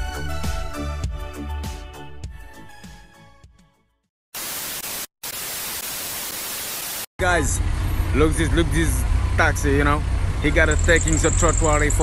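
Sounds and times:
white noise static burst: 4.4s - 7.1s
man talking: 7.2s - 12.0s
street traffic: 7.2s - 12.0s.

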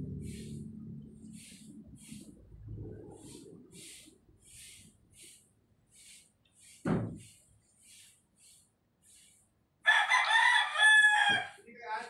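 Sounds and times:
short low thump: 6.8s - 7.2s
rooster crowing: 9.8s - 11.6s.

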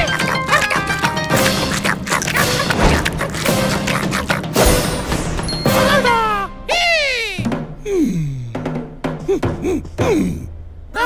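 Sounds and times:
crunchy eating sound effects: 0.0s - 6.1s
cartoon background music: 0.0s - 10.2s.

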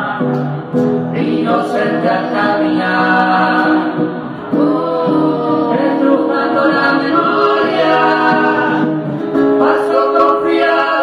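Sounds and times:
voices singing in harmony: 0.0s - 11.0s.

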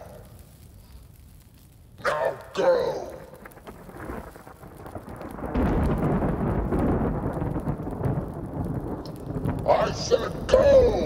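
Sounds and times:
thunder-like rumble: 2.4s - 11.0s.

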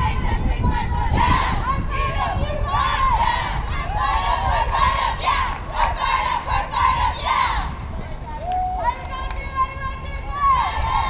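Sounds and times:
young voices chanting in unison: 0.0s - 7.9s, 9.6s - 11.0s.

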